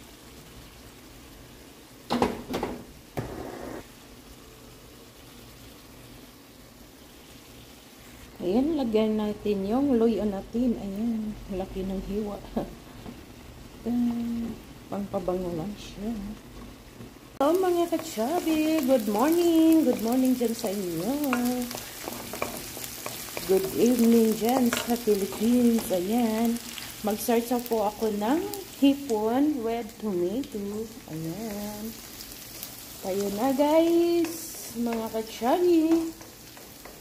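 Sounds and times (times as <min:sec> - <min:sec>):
onion sizzling in hot oil: 0:00.0 - 0:37.0
sauce bubbling in a frying pan: 0:16.3 - 0:37.0
wooden spoon clicking and scraping: 0:21.3 - 0:23.7, 0:35.9 - 0:37.0.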